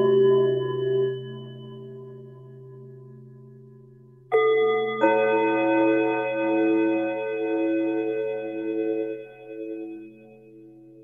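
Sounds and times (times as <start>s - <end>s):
bell-like chimes ringing: 0.0s - 2.6s.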